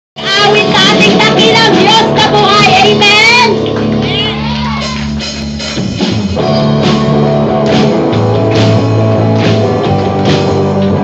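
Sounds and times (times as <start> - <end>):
church band playing held chords: 0.2 - 11.0.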